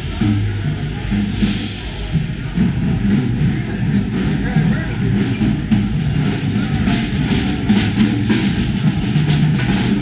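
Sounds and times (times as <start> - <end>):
drum hits from several kits: 0.0 - 10.0
steady low rumble: 0.0 - 10.0.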